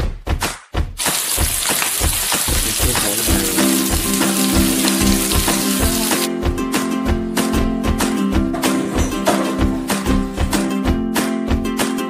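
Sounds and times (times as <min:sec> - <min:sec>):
background music with beat: 0:00.0 - 0:12.0
food sizzling on a griddle: 0:01.0 - 0:06.3.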